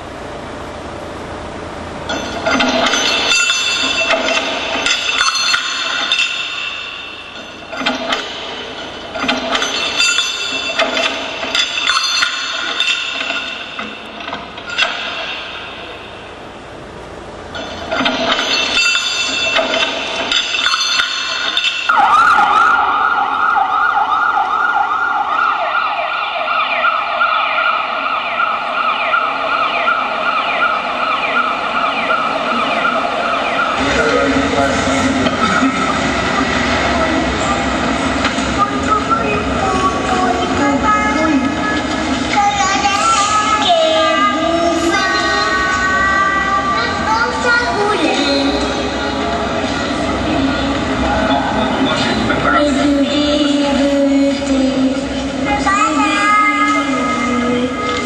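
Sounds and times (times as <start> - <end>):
pitched clattering: 17.5 - 22.0
siren-like wail: 21.9 - 35.7.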